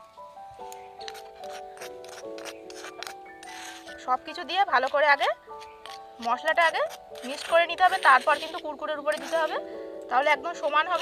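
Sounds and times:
background music with held notes: 0.0 - 11.0
spoon scraping clay bowl: 1.0 - 9.7, 10.3 - 11.0.

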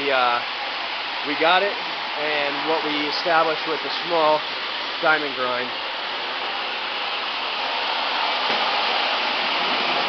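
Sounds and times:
machine motor rushing: 7.9 - 10.0.

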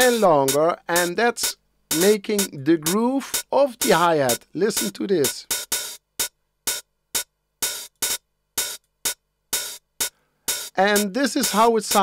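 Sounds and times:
drum machine hi-hat hits: 0.0 - 12.0.

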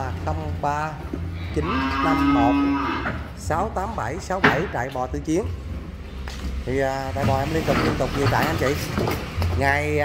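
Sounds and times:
cow mooing: 1.4 - 3.3.

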